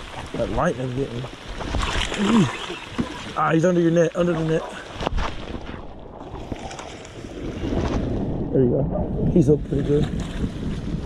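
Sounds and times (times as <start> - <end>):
water lapping against boat hull: 0.0 - 8.2
wind rumbling on microphone: 0.0 - 11.0.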